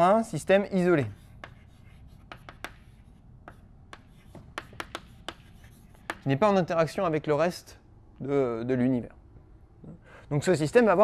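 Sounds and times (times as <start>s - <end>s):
chalk tapping and scratching: 1.0s - 6.4s.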